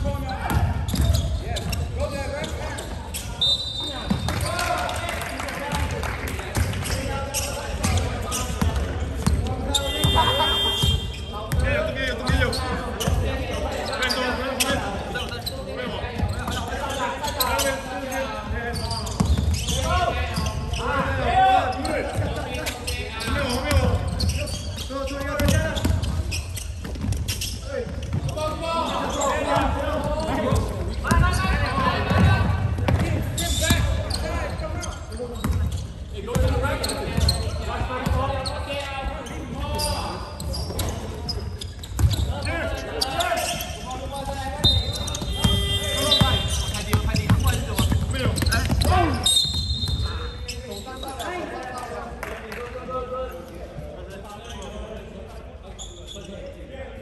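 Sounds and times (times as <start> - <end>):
players calling out: 0.2 - 52.0
basketball bouncing on court: 0.4 - 2.0, 7.8 - 13.3, 19.1 - 19.8, 25.2 - 28.4, 30.5 - 34.3, 35.4 - 38.3, 40.4 - 42.4, 44.7 - 50.2.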